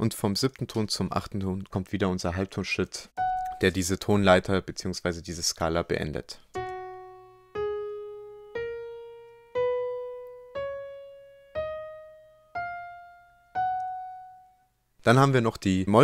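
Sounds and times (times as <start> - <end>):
piano notes playing a scale: 3.2 - 3.8, 6.6 - 14.7.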